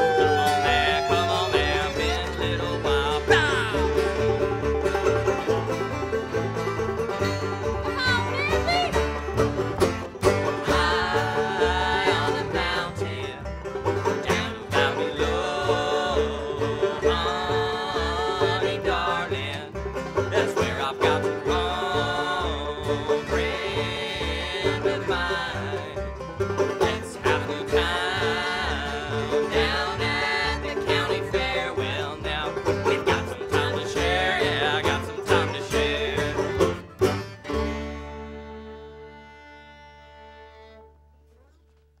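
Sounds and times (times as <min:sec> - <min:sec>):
bluegrass band playing: 0:00.0 - 0:41.9.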